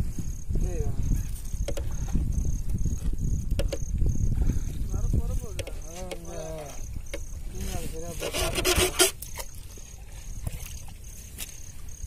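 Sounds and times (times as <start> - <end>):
rustling and splashing: 4.6 - 12.0
wet fishing net hauled in: 5.5 - 12.0.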